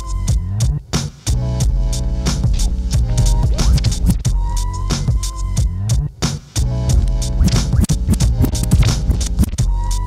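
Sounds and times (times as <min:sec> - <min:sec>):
hip-hop beat: 0:00.0 - 0:10.0
turntable record scratching: 0:02.3 - 0:04.4, 0:06.8 - 0:10.0.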